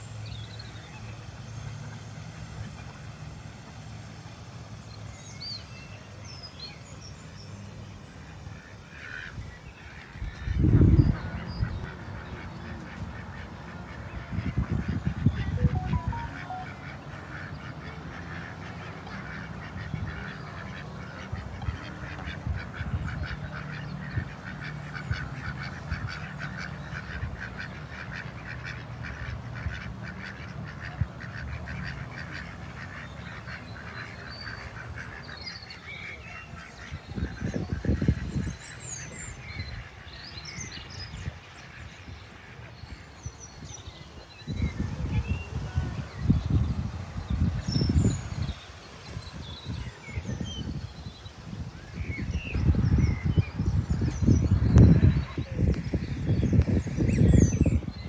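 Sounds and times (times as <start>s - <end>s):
ducks quacking and honking: 8.6s - 43.7s.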